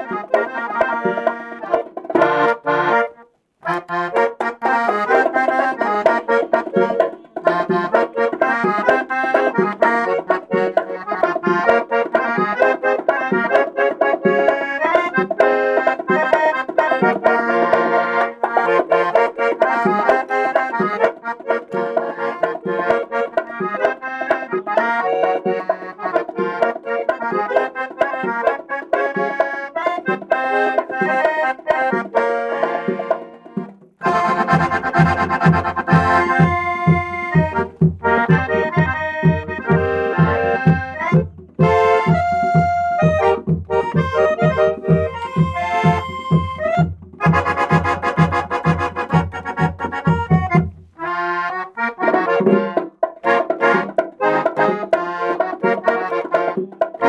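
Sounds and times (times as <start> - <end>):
accordion playing fast tune: 0.0 - 57.0.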